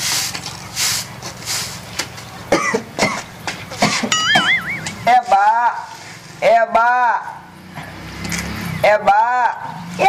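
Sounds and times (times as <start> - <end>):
broom swishing across ground: 0.0 - 2.0, 4.9 - 6.4.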